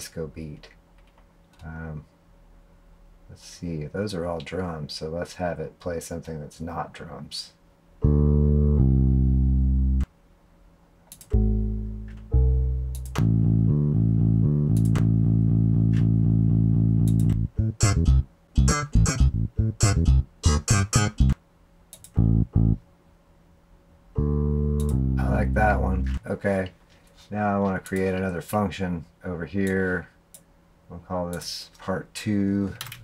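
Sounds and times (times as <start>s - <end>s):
bass loop samples: 8.0s - 10.1s, 11.2s - 21.4s, 22.0s - 22.8s, 24.2s - 26.4s.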